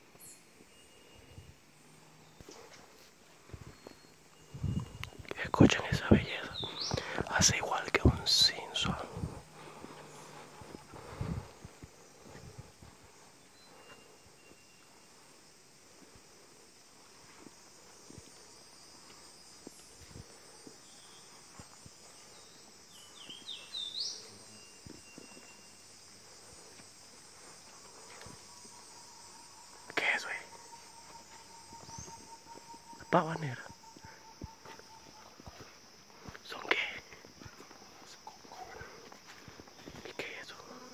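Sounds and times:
high-pitched insect drone: 3.4 - 40.9
rising bird chirp: 3.6 - 15.1, 20.8 - 26.1, 27.4 - 35.6
footsteps on dirt trail: 6.0 - 14.8, 17.0 - 29.0, 30.6 - 40.1.

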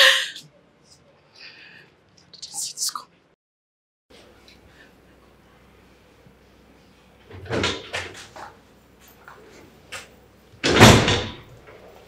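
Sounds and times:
door shutting with heavy thud: 10.6 - 11.5.

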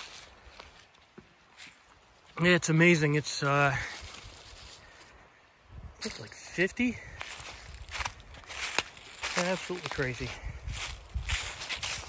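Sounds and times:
footsteps in dry leaves: 0.0 - 5.2, 6.0 - 12.0.

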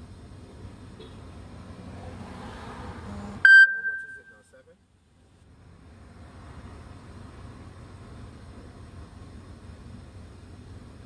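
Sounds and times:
loud electronic ding: 3.5 - 4.4.

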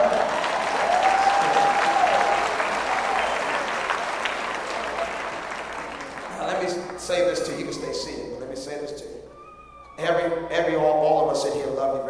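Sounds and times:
congregation applauding: 0.0 - 8.5.

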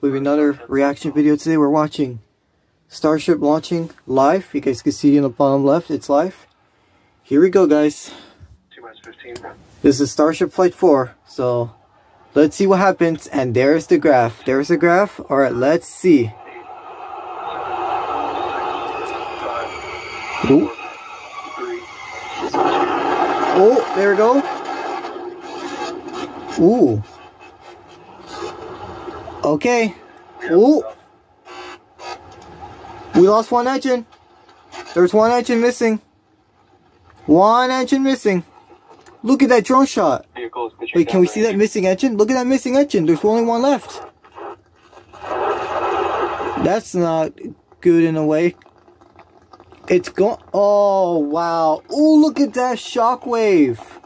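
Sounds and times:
faint broadcast voice: 8.7 - 9.8, 14.1 - 24.5, 40.2 - 41.8
rocket launch rushing noise: 16.0 - 26.5.

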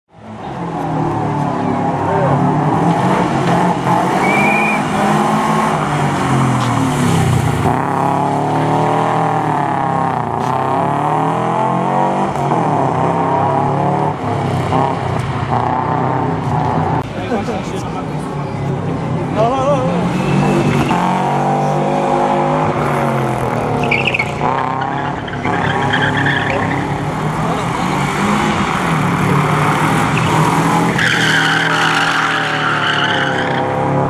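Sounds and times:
car engine revving hard: 2.0 - 17.0, 19.8 - 34.0.

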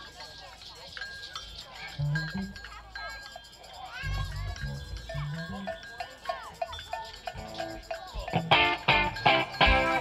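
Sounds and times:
drums steady tick: 0.0 - 10.0
electric bass line: 8.4 - 10.0.

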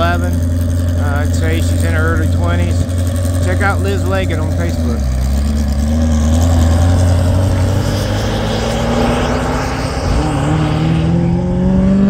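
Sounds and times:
engine pitch rising: 0.0 - 12.0.

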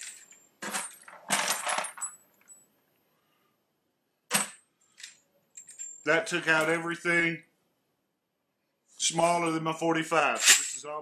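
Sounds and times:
brass cases rattling in plastic sorter: 0.0 - 2.2
brass clatter: 10.4 - 11.0.

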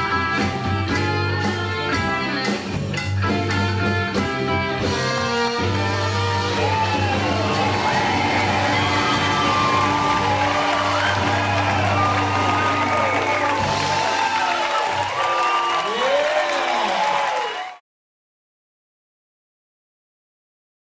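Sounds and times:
live band playing: 0.0 - 16.4
audience cheering and applauding: 6.0 - 17.8.

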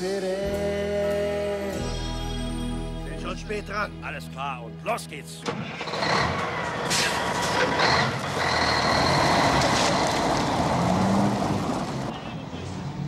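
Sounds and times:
car engine pulling away: 5.5 - 13.0.

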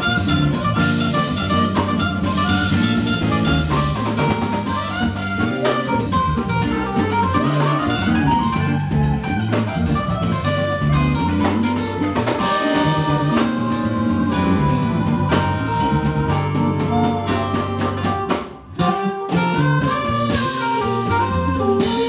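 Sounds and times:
live band jazzy groove: 0.0 - 22.0
saxophone: 0.0 - 22.0.

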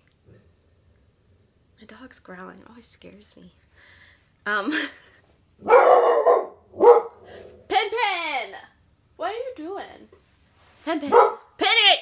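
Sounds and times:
dog barking: 5.6 - 7.3, 11.1 - 11.5.

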